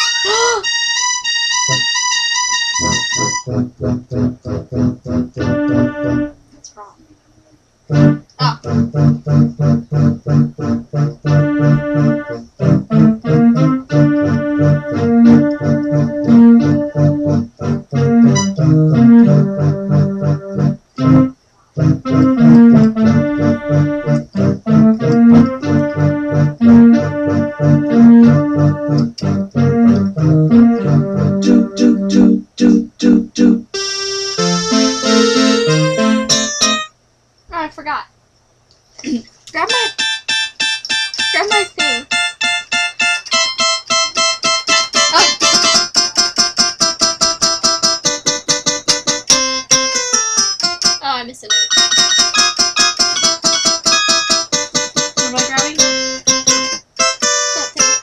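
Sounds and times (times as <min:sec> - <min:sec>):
electronic keyboard piano notes: 0:00.0 - 0:06.4, 0:07.9 - 0:36.9, 0:39.6 - 0:58.0.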